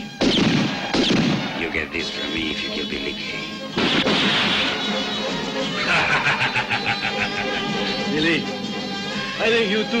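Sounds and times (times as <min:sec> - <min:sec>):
man laughing rapidly: 0:05.8 - 0:07.8.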